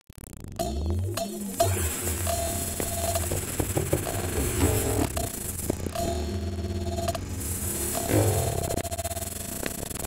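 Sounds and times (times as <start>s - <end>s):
low electronic drone: 0.5s - 10.0s.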